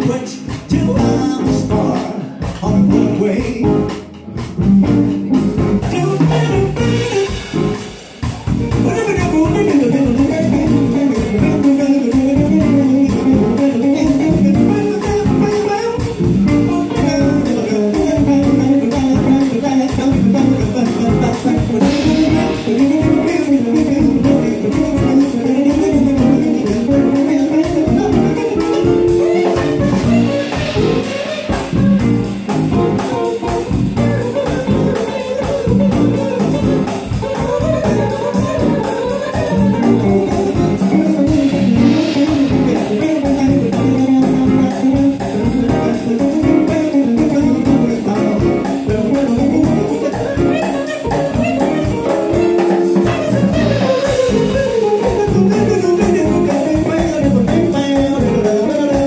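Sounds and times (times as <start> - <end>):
bass guitar: 0.0 - 59.0
drum kit: 0.0 - 59.0
electric guitar: 0.0 - 59.0.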